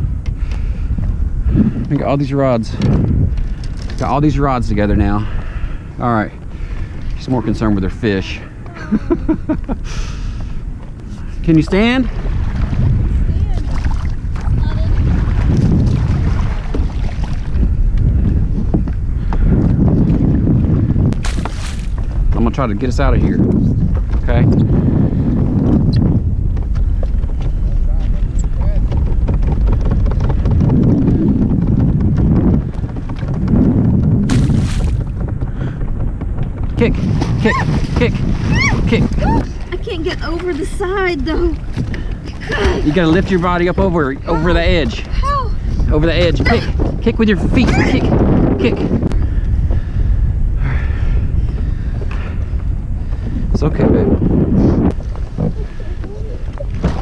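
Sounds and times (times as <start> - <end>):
wind buffeting microphone: 0.0 - 57.0
water rushing against hull: 11.2 - 18.8, 20.0 - 22.4, 34.2 - 35.3, 36.8 - 49.1, 54.8 - 57.0.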